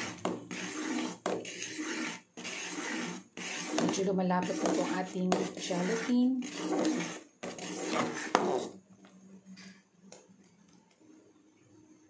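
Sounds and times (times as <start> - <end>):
metal spoon scraping a pot: 0.0 - 8.8.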